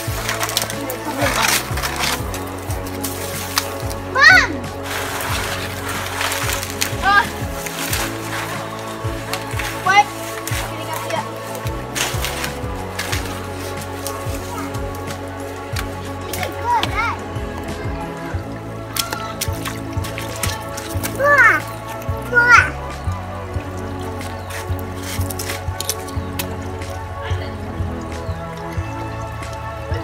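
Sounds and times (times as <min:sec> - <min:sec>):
background music with bass line: 0:00.0 - 0:30.0
children's high calls: 0:04.0 - 0:04.7, 0:18.9 - 0:19.6.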